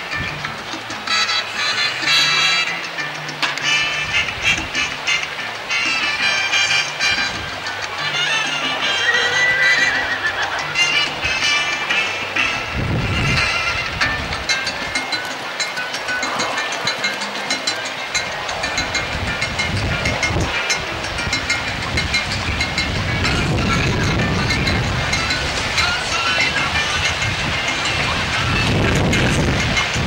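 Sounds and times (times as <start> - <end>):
background music: 0.0 - 30.0
horse hoofbeats on grass: 6.0 - 21.2.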